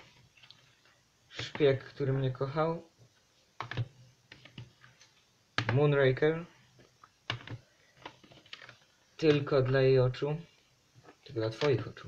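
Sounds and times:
plastic cases clicking together: 7.3 - 9.5.

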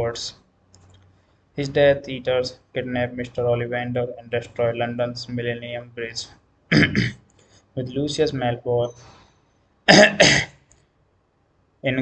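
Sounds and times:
man coughing: 6.7 - 7.2, 9.9 - 10.6.

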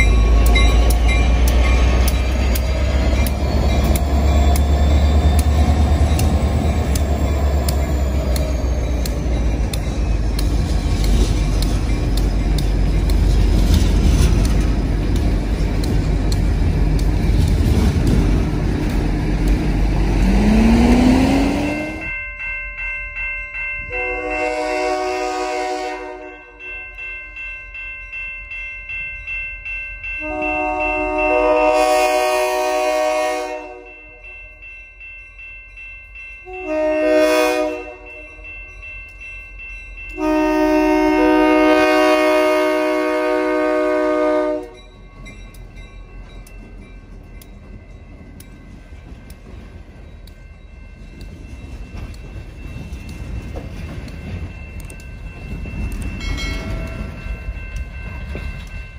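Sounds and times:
crossing bell ringing: 0.0 - 58.9
freight train rumbling past: 0.0 - 58.9
locomotive air horn blasts: 23.9 - 26.5, 30.2 - 34.0, 36.5 - 38.2, 40.2 - 44.8.

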